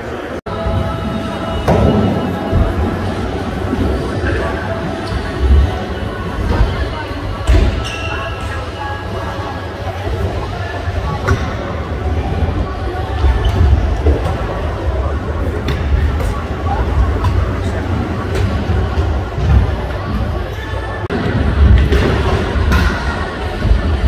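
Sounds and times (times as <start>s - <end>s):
indistinct voices: 0.0s - 24.0s.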